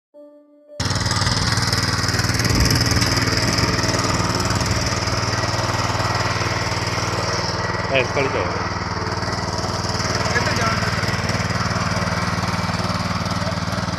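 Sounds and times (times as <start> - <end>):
small petrol engine running: 0.8 - 13.9
tines churning through soil: 0.8 - 13.9.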